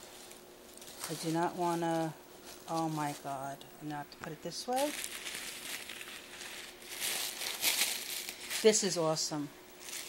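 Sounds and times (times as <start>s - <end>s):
tissue paper rustling: 0.0s - 3.5s, 4.7s - 9.0s, 9.8s - 10.0s.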